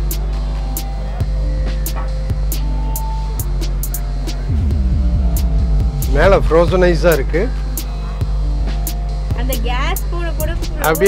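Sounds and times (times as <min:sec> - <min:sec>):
steady low hum: 0:02.3 - 0:11.0.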